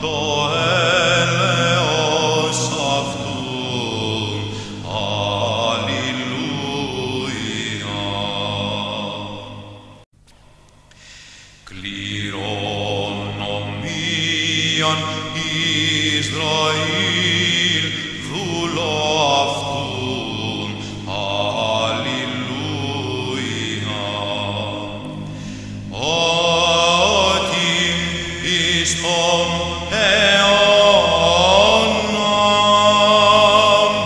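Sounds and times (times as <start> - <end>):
low vocal drone: 0.0 - 10.0, 11.6 - 34.0
solo chant with ornaments: 0.0 - 10.1, 11.0 - 34.0.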